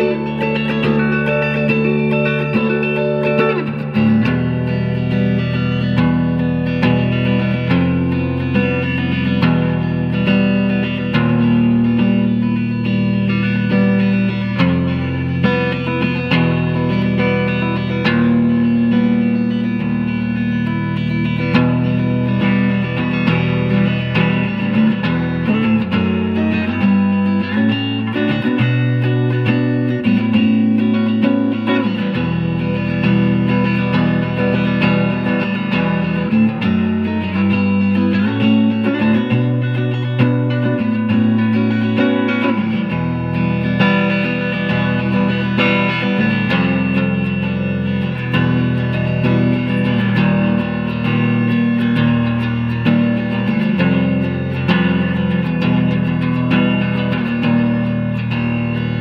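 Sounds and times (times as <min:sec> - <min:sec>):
clean electric guitar: 0:00.0 - 0:59.0.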